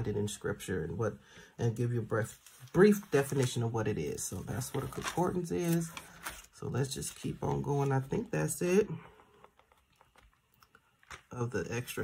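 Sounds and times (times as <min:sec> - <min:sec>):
thin pages being turned: 0:04.4 - 0:08.3.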